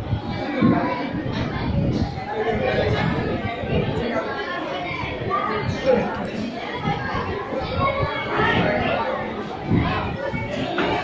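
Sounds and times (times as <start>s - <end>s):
murmur of overlapping conversation: 0.0s - 11.0s.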